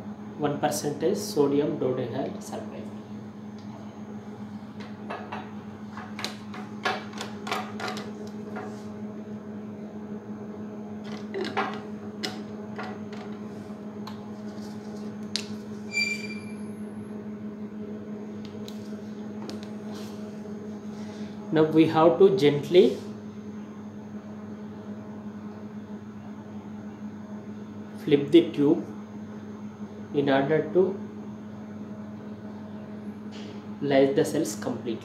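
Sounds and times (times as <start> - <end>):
steady low hum: 0.0 - 35.0
brief high squeak: 15.9 - 16.7.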